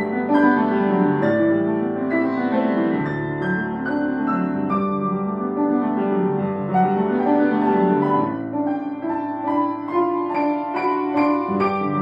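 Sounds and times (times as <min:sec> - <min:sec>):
piano duet: 0:00.0 - 0:12.0.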